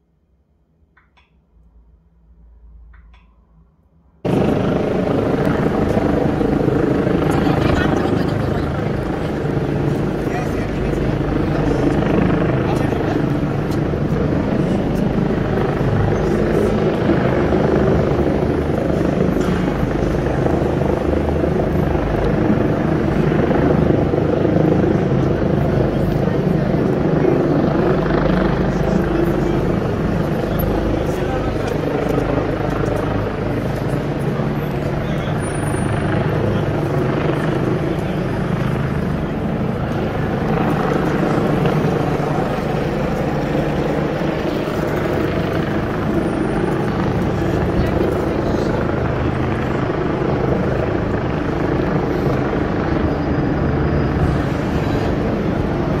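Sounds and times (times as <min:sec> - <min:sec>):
low traffic rumble: 0:00.4 - 0:56.0
passers-by talking: 0:04.3 - 0:56.0.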